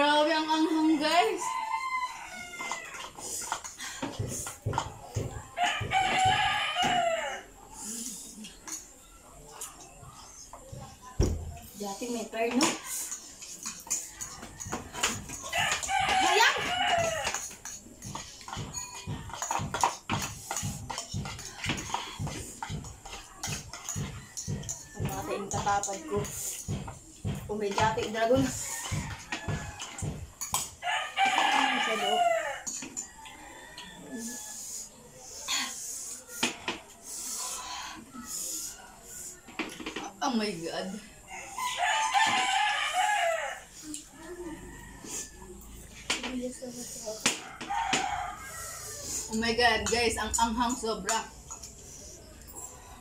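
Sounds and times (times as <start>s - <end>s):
rooster crowing: 0.6s - 3.2s, 5.2s - 7.6s, 14.6s - 17.5s, 28.4s - 34.8s, 41.3s - 45.7s, 47.4s - 49.4s
spoons clinking against bowls: 7.9s - 10.1s, 12.1s - 34.0s, 49.1s - 52.8s.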